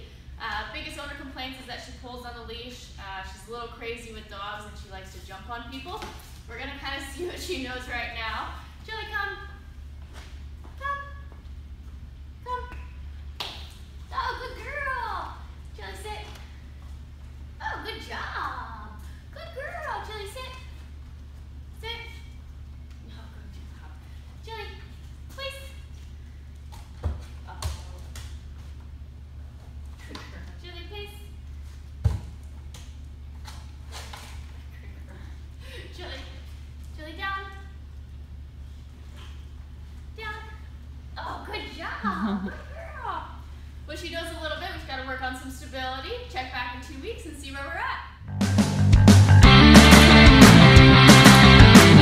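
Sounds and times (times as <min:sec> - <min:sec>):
steady low hum: 0:00.0 - 0:52.0
woman calling a dog: 0:10.6 - 0:11.4, 0:12.4 - 0:13.0, 0:17.6 - 0:20.8, 0:21.8 - 0:22.4, 0:24.4 - 0:25.9.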